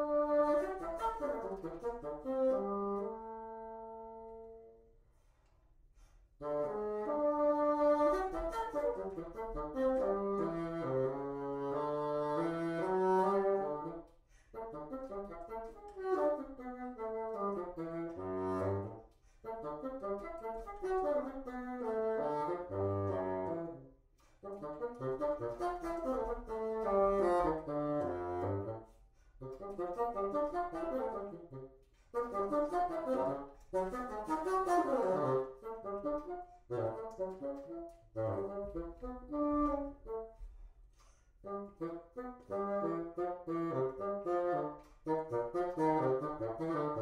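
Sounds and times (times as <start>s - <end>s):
solo bassoon playing: 0.0s - 4.9s, 6.4s - 47.0s.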